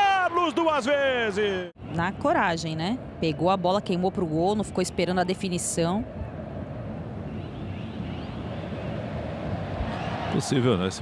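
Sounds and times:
stadium crowd noise: 0.0 - 1.7, 7.6 - 11.0.

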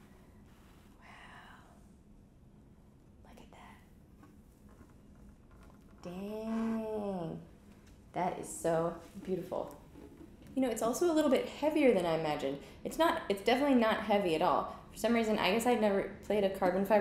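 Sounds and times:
woman saying ooh: 6.0 - 7.5.

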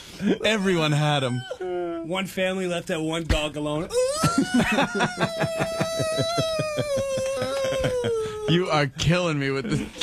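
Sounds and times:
man imitating dog whining howl: 3.9 - 8.5.

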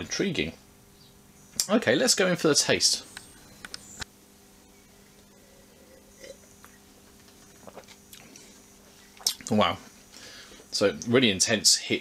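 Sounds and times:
low steady hum: 0.0 - 12.0
tasting mouth sounds: 7.4 - 8.5, 9.1 - 9.6
sip from a glass: 7.6 - 8.4, 9.2 - 9.5.

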